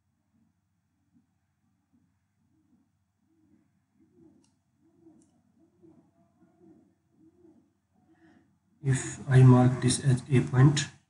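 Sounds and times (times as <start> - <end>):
faint clicks: 4.3 - 5.4.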